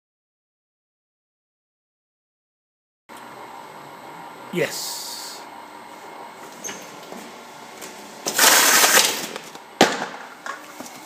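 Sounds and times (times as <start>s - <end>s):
packing tape pulling off roll: 8.3s - 9.6s.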